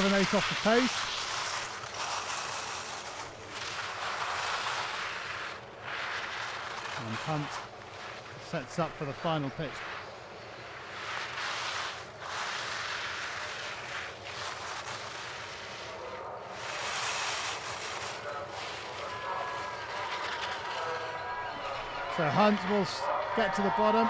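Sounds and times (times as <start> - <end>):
skis scraping on hard snow: 0.0 - 24.0
faint distant voices: 15.7 - 24.0.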